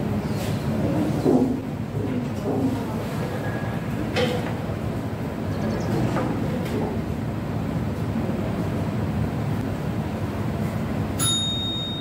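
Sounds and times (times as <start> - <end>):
low room rumble: 0.0 - 12.0
bell ding: 11.2 - 12.0.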